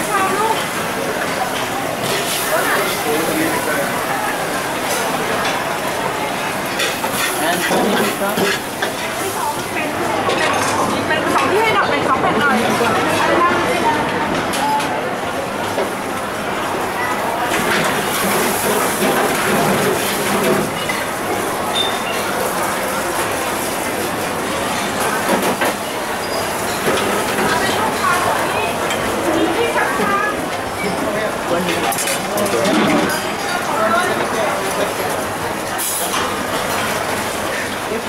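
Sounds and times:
steel bowls and utensils clinking: 6.6 - 9.4.

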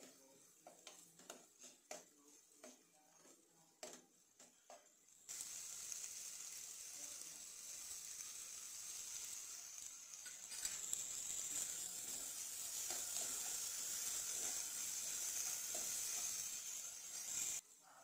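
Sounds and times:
vegetables sizzling in hot oil: 0.0 - 17.8.

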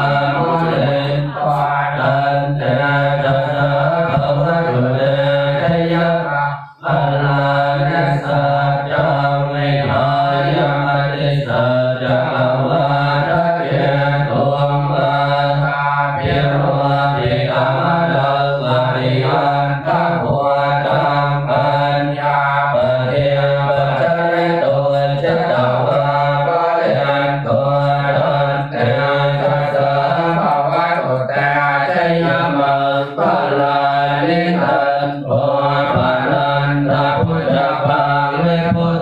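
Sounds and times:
monks chanting in unison: 0.0 - 39.0.

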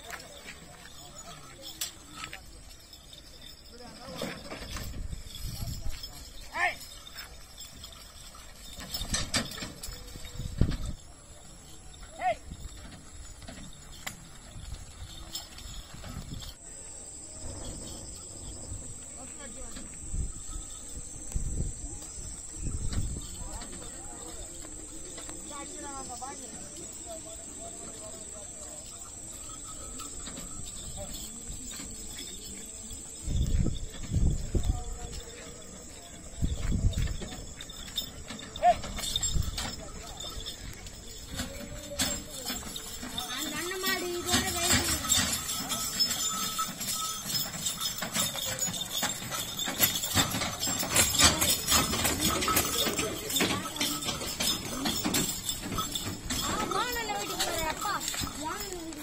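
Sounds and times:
background voices: 0.0 - 59.0
hooves on muddy track: 0.0 - 59.0
insects droning: 0.0 - 59.0.

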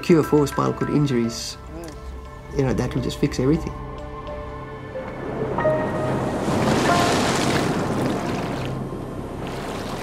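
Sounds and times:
soft background music: 0.0 - 10.0
sea surf rushing: 5.2 - 10.0.

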